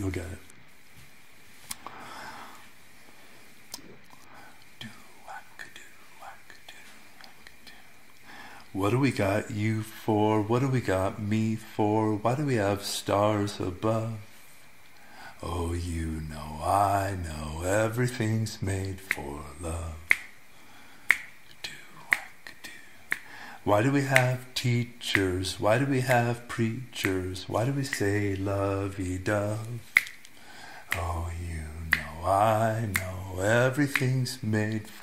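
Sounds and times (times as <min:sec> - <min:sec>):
mouth clicks: 0:03.7 - 0:04.8, 0:18.2 - 0:20.4, 0:21.0 - 0:35.0
finger snaps: 0:03.7 - 0:05.0, 0:18.8 - 0:20.4, 0:21.0 - 0:35.0
person whispering: 0:03.8 - 0:07.9, 0:21.6 - 0:24.7.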